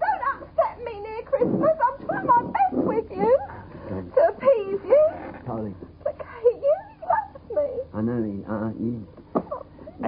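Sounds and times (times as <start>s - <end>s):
woman speaking tearfully: 0.0s - 3.5s.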